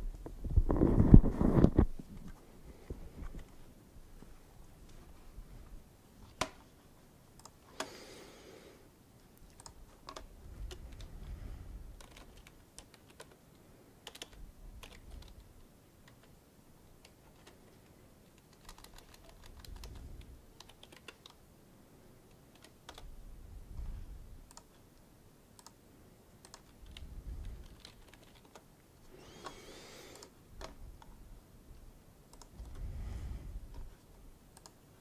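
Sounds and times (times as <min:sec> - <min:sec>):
computer keyboard typing: 0:09.4 - 0:11.1, 0:11.9 - 0:13.4, 0:14.0 - 0:16.4, 0:18.3 - 0:21.4, 0:22.3 - 0:23.1, 0:24.4 - 0:24.8, 0:26.4 - 0:28.7, 0:34.5 - 0:34.8.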